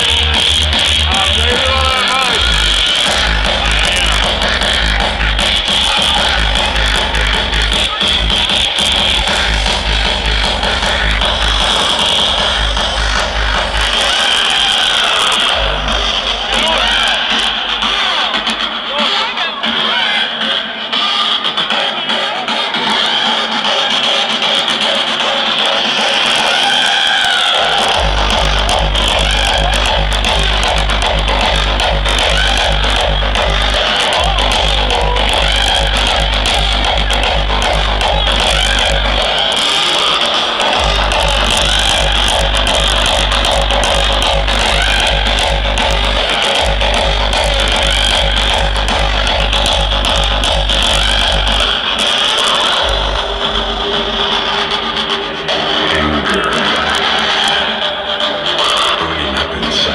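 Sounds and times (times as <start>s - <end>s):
pounding kick drum: 0.0s - 14.2s, 27.8s - 39.4s, 40.8s - 54.4s
loud hardstyle dance music: 0.0s - 59.9s.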